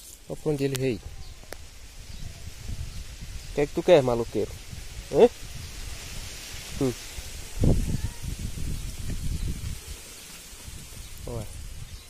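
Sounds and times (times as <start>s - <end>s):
leaves rustling against phone: 0.0s - 12.0s.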